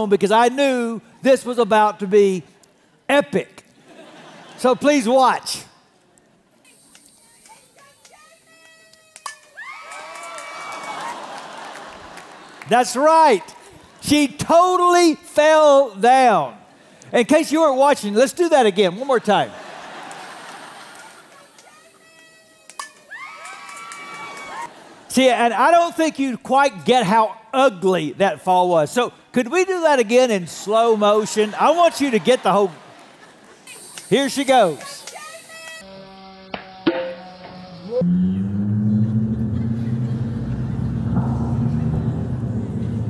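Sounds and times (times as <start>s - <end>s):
people yelling and cheering: 8.4s - 11.9s, 20.7s - 24.8s
sharp bat knock: 36.6s - 37.4s
stretched slowed-down tones: 37.8s - 43.0s
deep low drone: 37.9s - 43.0s.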